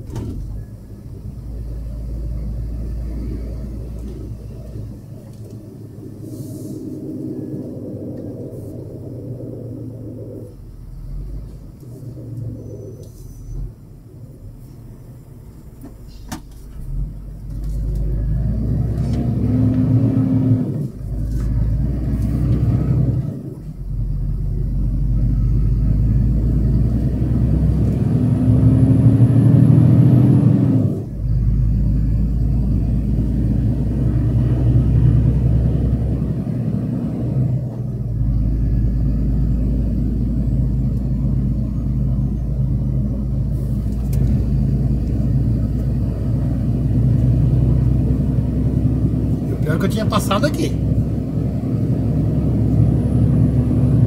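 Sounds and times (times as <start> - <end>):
truck diesel engine from cab: 0.0 - 54.0.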